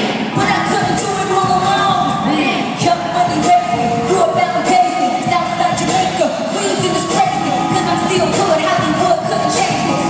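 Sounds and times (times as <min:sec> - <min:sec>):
live pop concert music with singing: 0:00.0 - 0:10.0.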